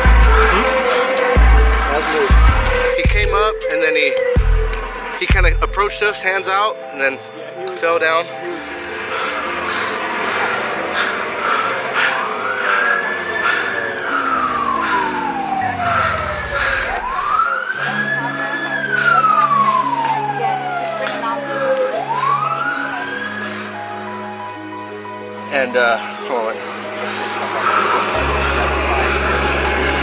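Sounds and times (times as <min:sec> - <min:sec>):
emergency vehicle siren wailing: 0:00.0 - 0:30.0.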